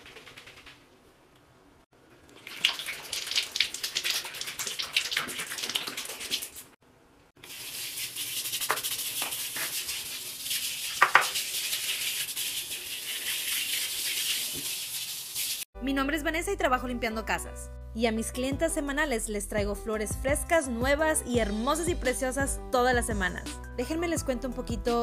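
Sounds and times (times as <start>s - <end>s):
brush scrubbing tile floor: 7.4s - 15.6s.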